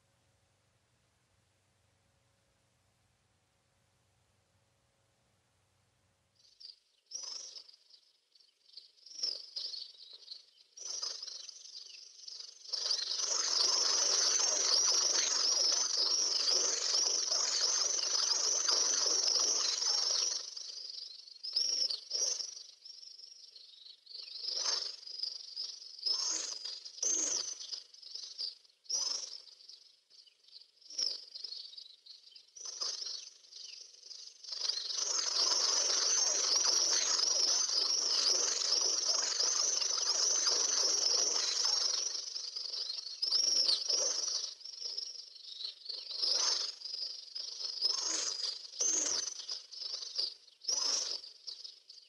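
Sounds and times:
small birds chirping: 0:03.8 - 0:52.0.

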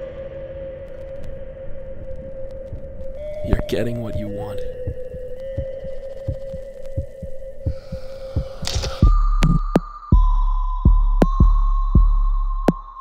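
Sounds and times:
sustained held tone: 0:00.0 - 0:13.0
heavy low thumps: 0:04.6 - 0:12.7
deep bass drone: 0:04.7 - 0:13.0.

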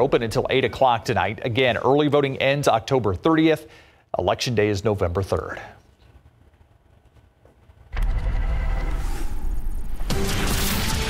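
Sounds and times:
deep rumbling whoosh: 0:07.9 - 0:10.1.

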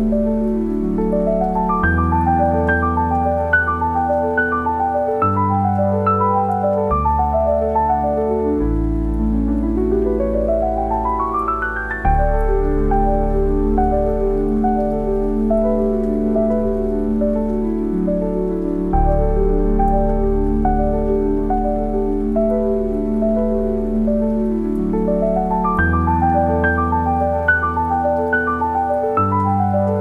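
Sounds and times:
gentle solo piano: 0:00.0 - 0:30.0
steady rain: 0:00.0 - 0:30.0.

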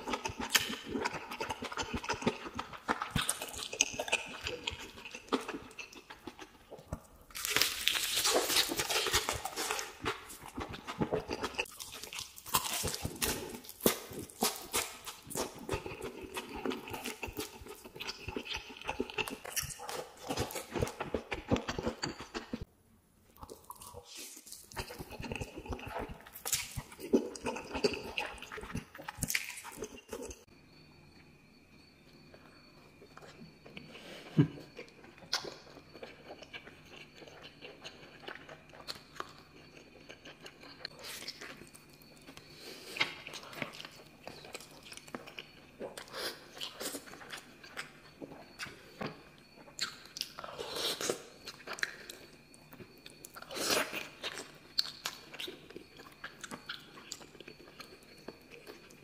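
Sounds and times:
crunching fried chicken: 0:00.0 - 0:22.7, 0:23.4 - 0:30.5
wet chewing and lip smacking: 0:00.0 - 0:22.7, 0:23.4 - 0:30.5, 0:32.4 - 0:59.0.

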